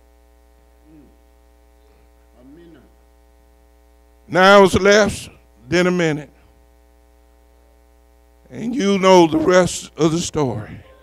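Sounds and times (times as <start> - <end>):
electrical mains hum: 0.0 - 11.0
faint voice: 10.5 - 11.0.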